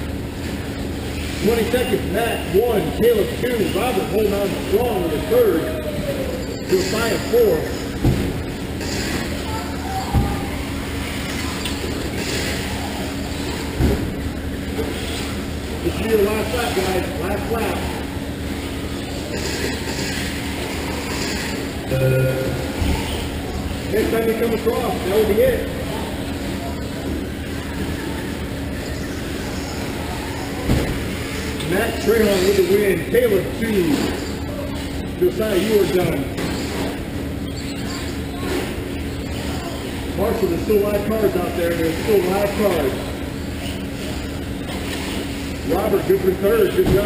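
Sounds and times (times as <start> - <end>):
low hum: 0.0 - 32.7.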